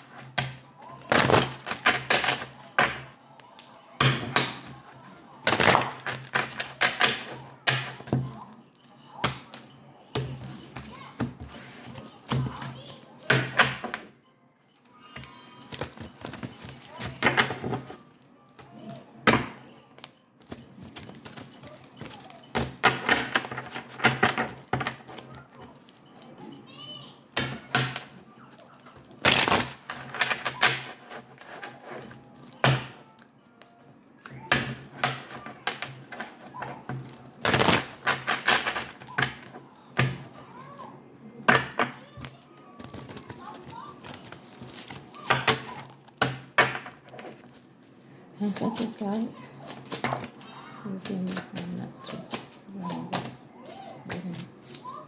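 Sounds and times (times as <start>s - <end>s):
cards being shuffled: 42.2s - 53.4s.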